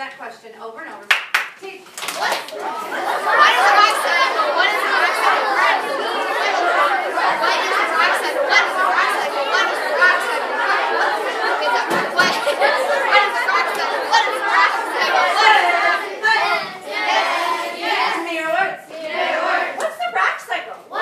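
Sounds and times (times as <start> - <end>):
children talking at once: 1.7 - 21.0.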